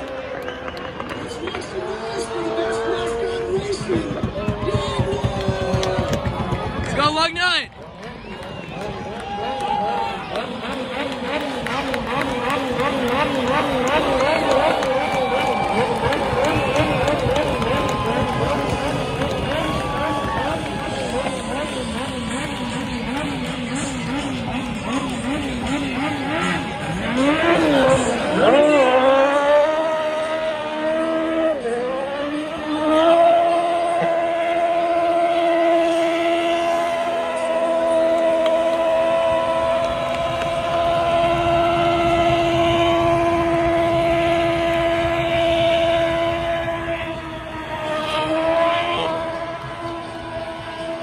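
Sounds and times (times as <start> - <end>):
car engine revving: 0.0 - 51.0.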